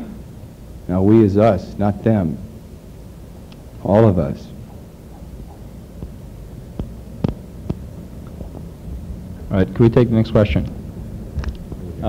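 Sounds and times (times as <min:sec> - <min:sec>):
low hum and rumble: 0:00.0 - 0:12.0.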